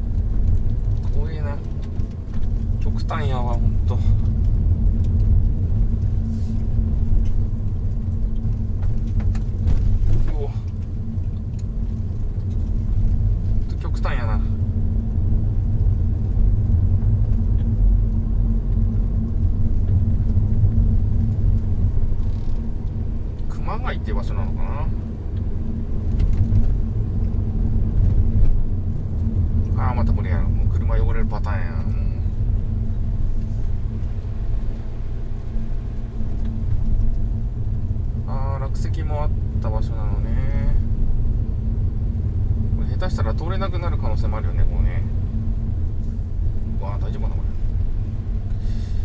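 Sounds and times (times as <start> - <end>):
road and engine noise in car: 0.0 - 49.0.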